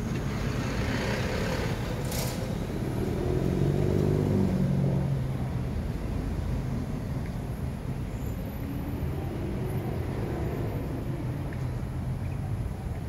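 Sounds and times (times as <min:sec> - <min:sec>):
vehicle engine passing by: 0:00.0 - 0:05.5.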